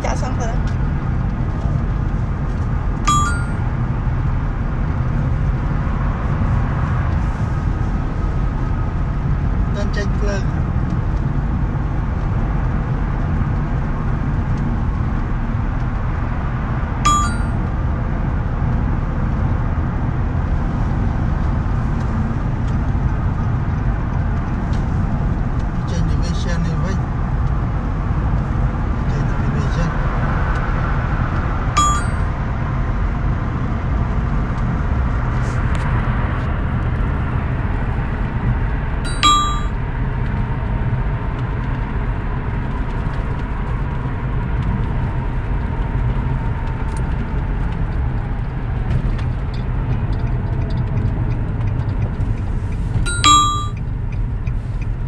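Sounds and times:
car road and engine rumble: 0.0s - 55.0s
short ringing clicks: 3.1s - 3.6s, 17.1s - 17.6s, 31.8s - 32.3s, 39.1s - 39.7s, 53.1s - 53.8s.

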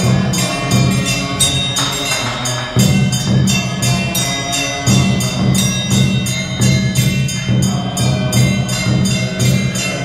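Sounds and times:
low chanting voice: 0.0s - 10.0s
percussion strokes: 0.0s - 10.0s.

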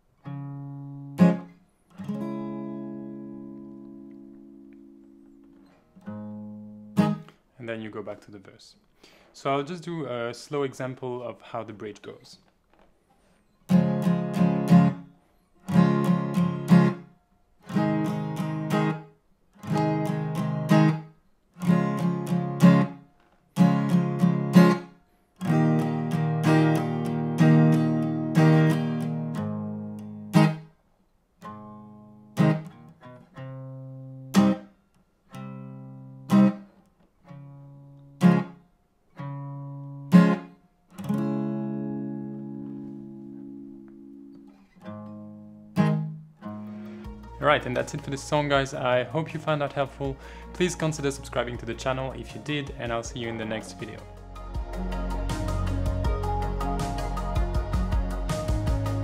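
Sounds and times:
acoustic guitar strumming: 0.0s - 7.4s, 13.6s - 30.7s, 31.4s - 59.0s.

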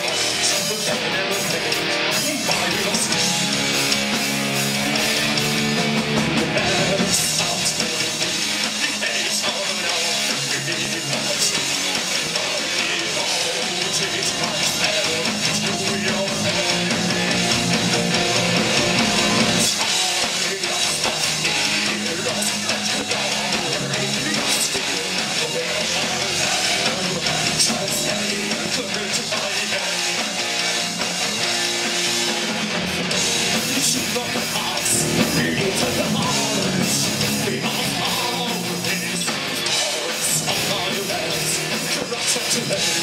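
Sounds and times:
heavy metal band playing: 0.0s - 43.0s.

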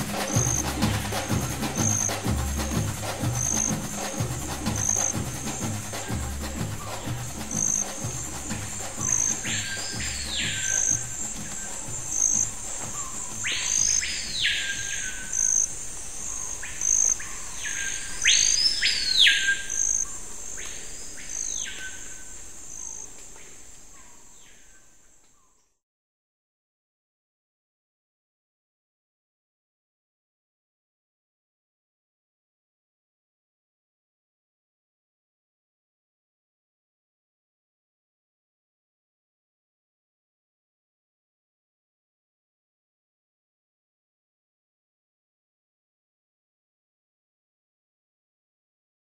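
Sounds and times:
low drum music: 0.0s - 15.5s
insects trilling: 0.0s - 25.7s
bird whistling calls: 0.0s - 25.8s.

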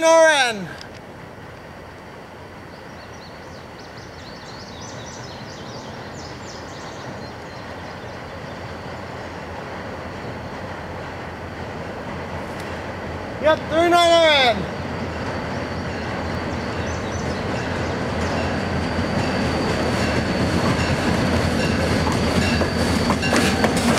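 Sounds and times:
diesel locomotive rumble: 0.7s - 23.9s.

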